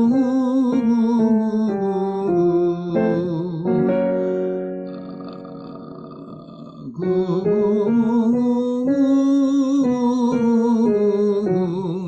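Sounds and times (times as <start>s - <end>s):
person singing a scale: 0.0s - 12.0s
piano chord: 0.0s - 12.0s.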